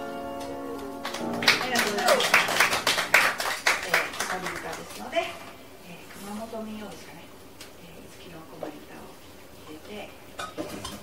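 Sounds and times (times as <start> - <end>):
dishes and cutlery clinking: 10.4 - 11.0.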